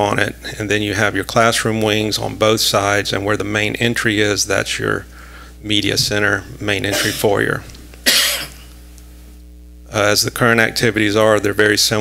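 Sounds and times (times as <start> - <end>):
low electrical hum: 0.0 - 12.0
short cough: 6.9 - 7.3, 8.1 - 8.7.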